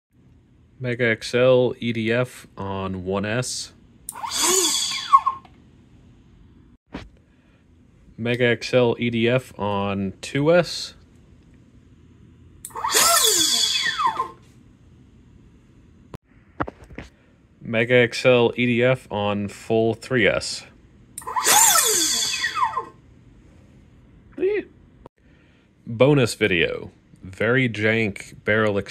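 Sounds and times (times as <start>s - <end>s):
electric fan whine spinning up: 0.2s - 28.9s
electric fan whine winding down: 0.8s - 5.6s, 12.6s - 15.5s, 18.2s - 23.1s.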